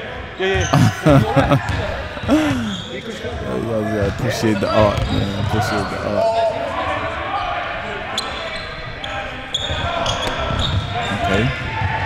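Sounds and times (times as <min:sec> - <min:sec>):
echoing game noise in gym: 0:00.0 - 0:12.0.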